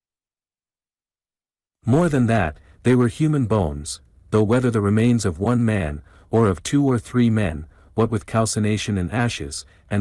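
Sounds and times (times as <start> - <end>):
narrator speaking: 1.8 - 10.0.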